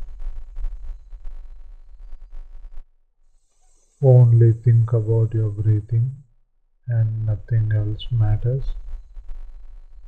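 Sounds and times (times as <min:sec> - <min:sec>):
buzzy electrical hum: 0:03.4 - 0:06.2, 0:06.9 - 0:09.6.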